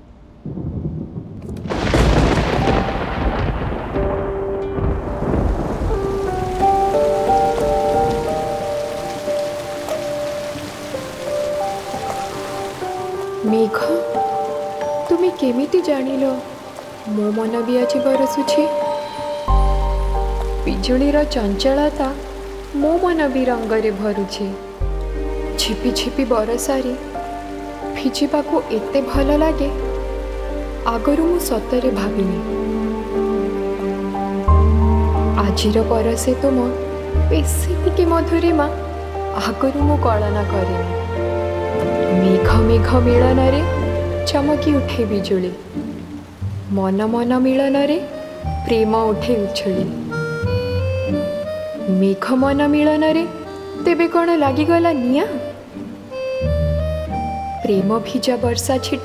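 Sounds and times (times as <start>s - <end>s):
thunder rumbling: 0.0s - 50.4s
heavy rain: 0.2s - 59.0s
sustained music: 1.4s - 59.0s
slow melody of held notes: 2.4s - 59.0s.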